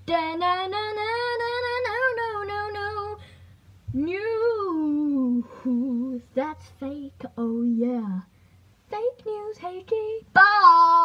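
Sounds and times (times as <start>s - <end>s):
boy singing: 3.9s - 8.3s, 8.9s - 11.0s.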